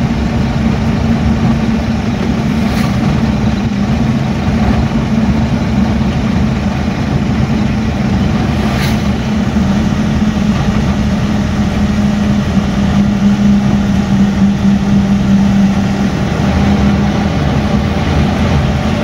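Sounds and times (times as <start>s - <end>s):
road rumble: 0.0s - 19.0s
truck engine running: 0.0s - 19.0s.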